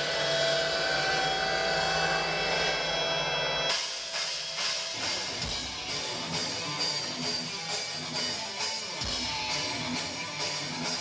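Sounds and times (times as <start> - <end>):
synthesizer drone: 0.0 - 6.1
drums: 0.0 - 11.0
guitar: 0.0 - 11.0.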